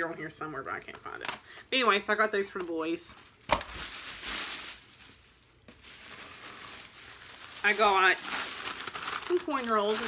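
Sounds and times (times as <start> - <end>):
plastic bag rustling: 2.4 - 10.0.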